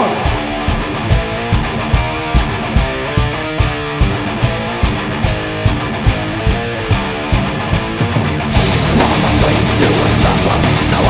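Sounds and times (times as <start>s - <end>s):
distorted electric guitar riff: 0.0s - 11.0s
drums: 0.0s - 11.0s.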